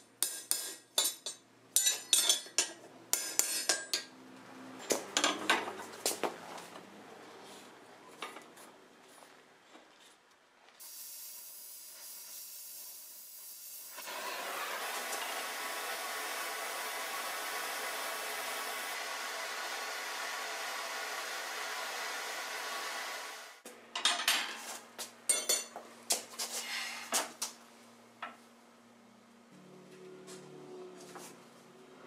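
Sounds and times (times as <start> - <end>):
cutting torch flame hissing: 10.8 - 23.6.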